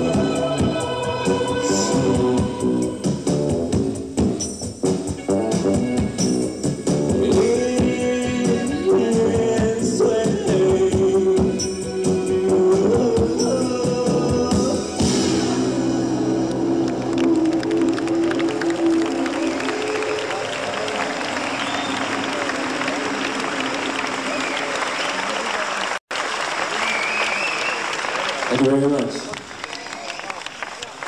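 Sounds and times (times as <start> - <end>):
audience applauding and cheering: 15.5 - 31.0
man speaking over pa: 28.4 - 30.0.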